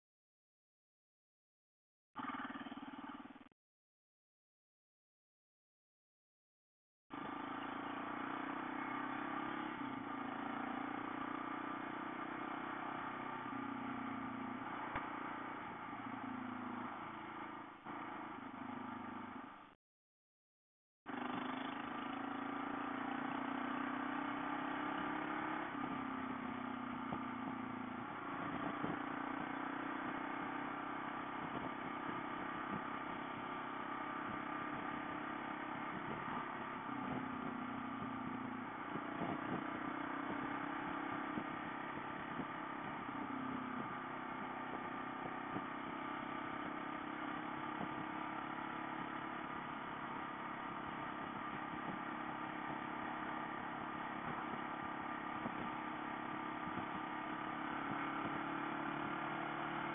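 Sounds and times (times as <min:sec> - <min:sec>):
motorcycle engine running: 0:02.2 - 0:03.6, 0:07.1 - 0:19.8, 0:21.1 - 0:59.9
road and wind noise: 0:07.1 - 0:19.8, 0:21.1 - 0:59.9.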